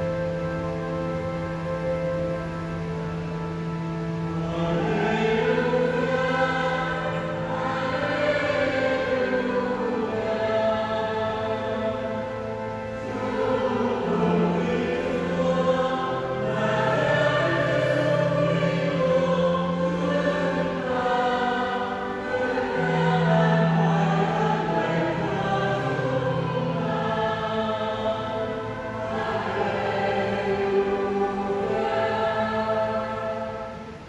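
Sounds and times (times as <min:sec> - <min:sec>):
choir singing: 0:00.0 - 0:34.0.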